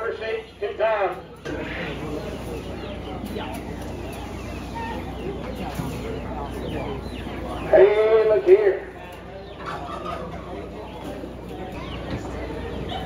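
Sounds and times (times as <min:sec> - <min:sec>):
chickens clucking: 0:00.0 - 0:13.0
murmur of crowd: 0:00.0 - 0:13.0.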